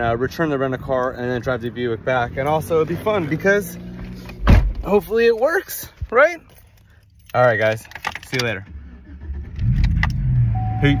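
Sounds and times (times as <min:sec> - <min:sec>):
car engine starting and idling: 0:00.0 - 0:11.0.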